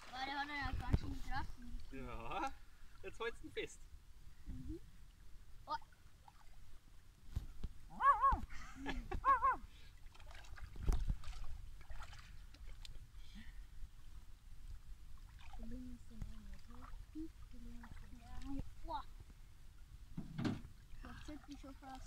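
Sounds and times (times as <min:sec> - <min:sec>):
river water sloshing and splashing: 0:00.0 - 0:03.0, 0:05.8 - 0:07.3, 0:09.7 - 0:13.2, 0:13.9 - 0:18.9, 0:20.5 - 0:22.0
voice exclamations: 0:07.9 - 0:08.5.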